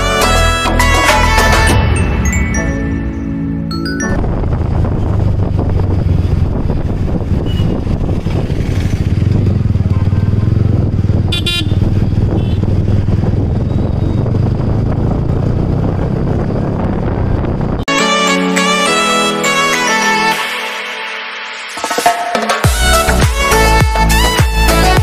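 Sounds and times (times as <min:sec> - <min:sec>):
motorcycle engine running: 0:04.2 - 0:17.8
vehicle horn toot: 0:07.4 - 0:07.8, 0:11.3 - 0:12.7.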